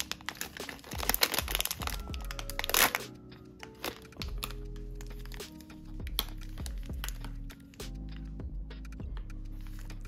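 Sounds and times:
foil bag crinkling and tearing: 0.0 - 3.1, 3.7 - 7.3.

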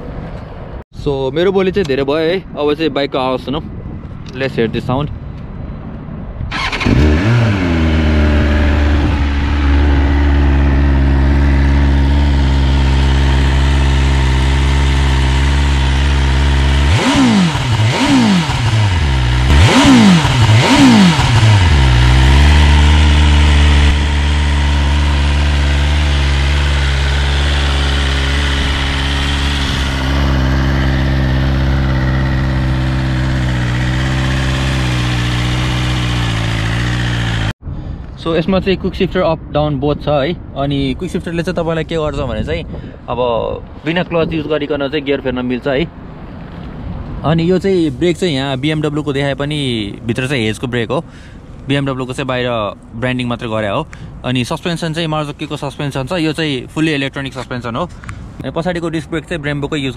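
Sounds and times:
motorcycle throttle blips: 6.5 - 37.5
motorcycle engine starting and idling: 6.5 - 37.6.

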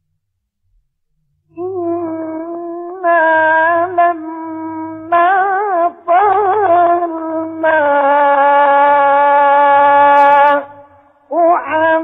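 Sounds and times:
person chanting a long vowel: 1.6 - 12.0.

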